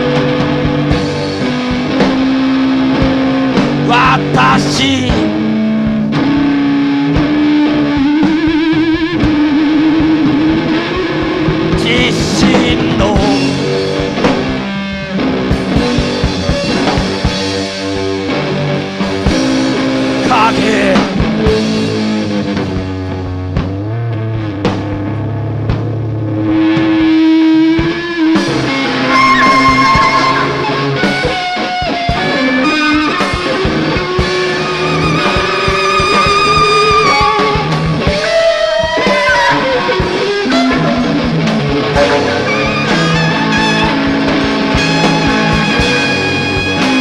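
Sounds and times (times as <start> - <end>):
guitar sustained notes: 0.0 - 47.0
rock music: 0.0 - 47.0.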